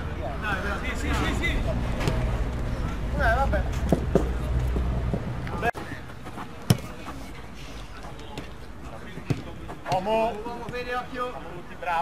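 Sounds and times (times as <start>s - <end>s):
faint players' voices: 0.0s - 12.0s
football kicked on artificial turf: 6.6s - 7.0s.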